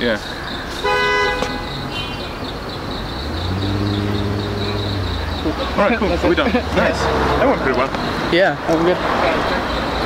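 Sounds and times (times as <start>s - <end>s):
engine humming: 1.4s - 10.0s.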